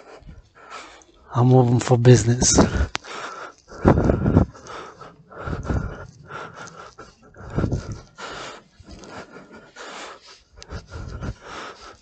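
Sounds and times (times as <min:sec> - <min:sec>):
man breathing hard: 0:00.0 - 0:01.5, 0:02.5 - 0:12.0.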